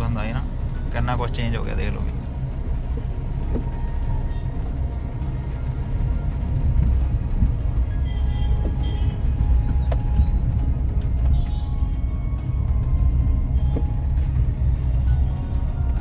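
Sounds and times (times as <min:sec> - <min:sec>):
car interior rumble: 0:00.0 - 0:16.0.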